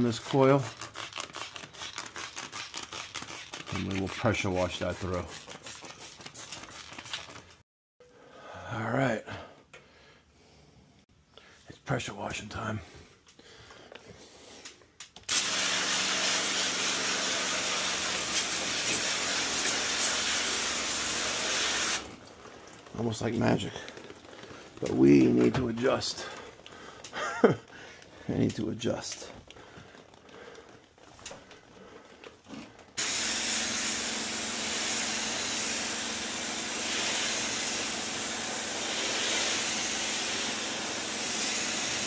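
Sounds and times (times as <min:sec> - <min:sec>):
spray bottle spritzing: 0:00.0 - 0:07.6, 0:15.3 - 0:22.8, 0:33.0 - 0:42.0.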